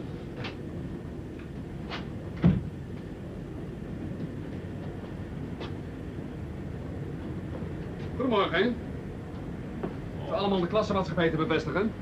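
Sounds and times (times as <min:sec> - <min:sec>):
train carriage rumbling: 0:00.0 - 0:12.0.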